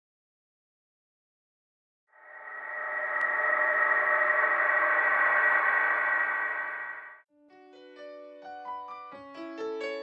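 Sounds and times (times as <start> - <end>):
ambient drone chord: 2.2 - 7.2.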